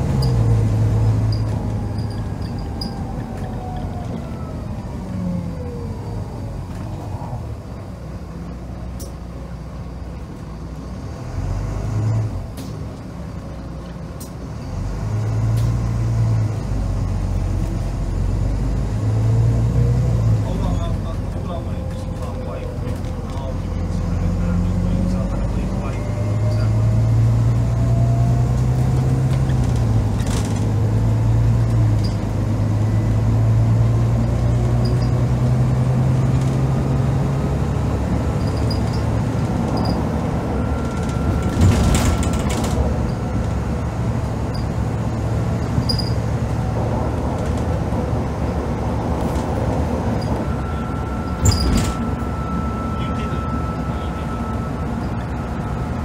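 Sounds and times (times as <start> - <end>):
bus diesel engine under throttle: 0.0 - 56.0
gearbox whine: 37.9 - 44.8, 49.9 - 56.0.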